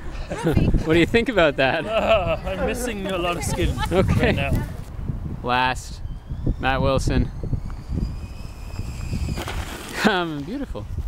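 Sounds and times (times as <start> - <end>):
zipline pulley whine: 5.8 - 10.1.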